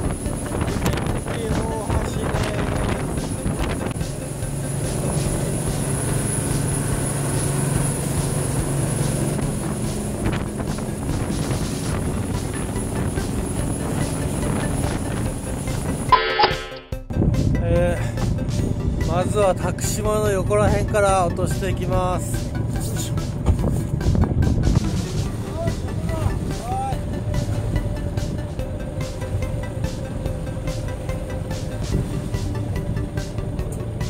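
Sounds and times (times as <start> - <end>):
boat engine running: 0.0 - 34.0
wind and water rushing: 0.0 - 34.0.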